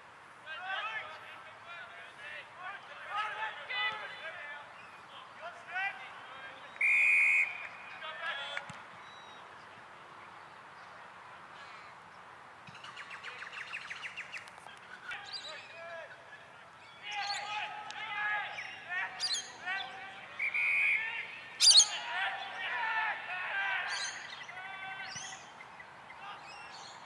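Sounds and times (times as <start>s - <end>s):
birds chirping and calling: 16.9s - 17.6s, 18.5s - 22.8s, 23.9s - 27.0s.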